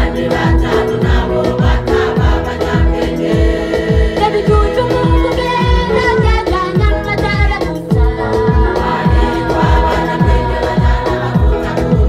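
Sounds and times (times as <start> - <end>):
choir singing gospel: 0.0 - 12.0
steady bass drum beat: 0.0 - 12.0.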